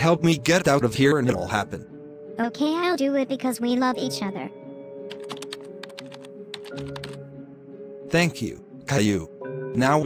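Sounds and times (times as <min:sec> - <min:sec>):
background music: 0:00.0 - 0:10.0
rapid clicks: 0:05.1 - 0:07.2.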